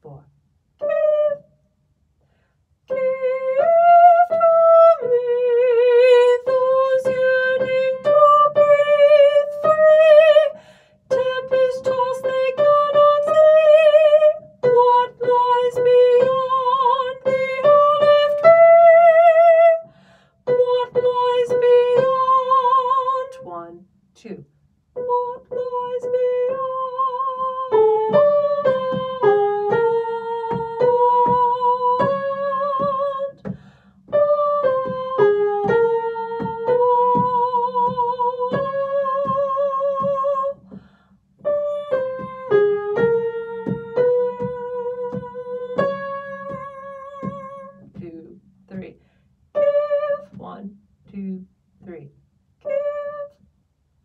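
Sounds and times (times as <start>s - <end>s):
soprano singing with vibrato: 0.8s - 1.5s, 2.9s - 19.9s, 20.5s - 24.4s, 25.0s - 40.8s, 41.4s - 48.9s, 49.6s - 52.0s, 52.6s - 53.4s.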